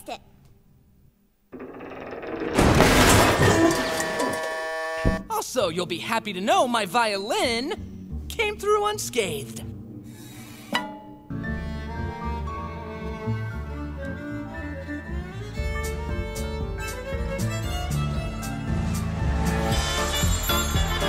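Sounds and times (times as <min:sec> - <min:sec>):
bowed double bass: 0:11.3 - 0:21.0
violin melody: 0:11.4 - 0:21.0.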